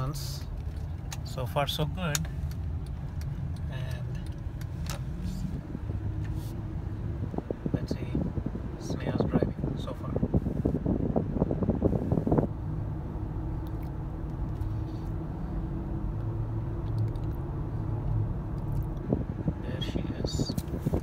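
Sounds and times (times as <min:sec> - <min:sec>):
car engine and road rumble: 0:00.0 - 0:21.0.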